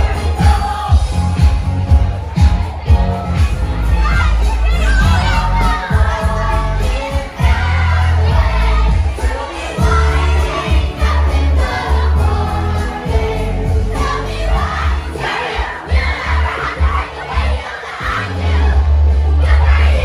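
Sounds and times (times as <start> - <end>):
loud bass-heavy dance music: 0.0 - 20.0
children shouting and singing along: 2.4 - 12.0, 13.9 - 20.0.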